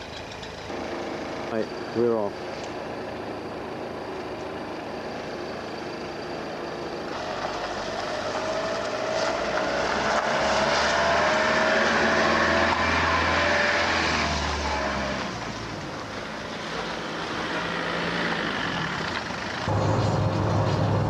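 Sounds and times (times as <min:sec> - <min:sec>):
tyres on gravel: 0:00.0 - 0:13.1
van engine: 0:00.0 - 0:21.0.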